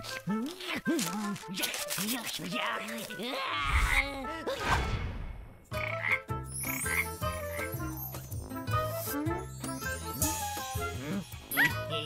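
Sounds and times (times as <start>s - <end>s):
light cartoon music with chimes: 6.2s - 12.0s.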